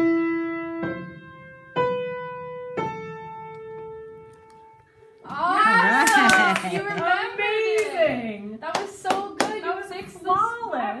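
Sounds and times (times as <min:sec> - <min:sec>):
hand claps: 0:05.3 - 0:08.0, 0:08.6 - 0:09.7
voices calling out: 0:05.3 - 0:08.2.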